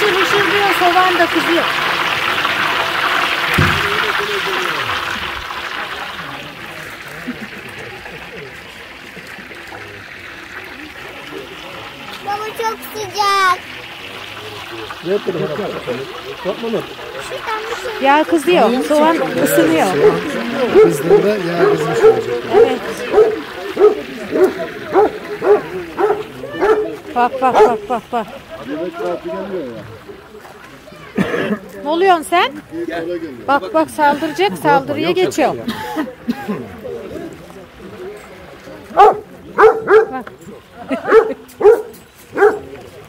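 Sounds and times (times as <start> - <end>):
faint background voices: 0.0 - 43.0
dog barking: 20.0 - 27.8, 39.0 - 40.2, 41.0 - 42.7.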